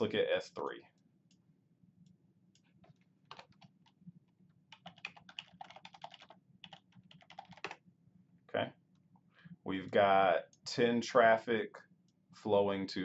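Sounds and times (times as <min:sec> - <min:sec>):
keyboard typing: 0:02.8 - 0:04.0, 0:04.7 - 0:07.8.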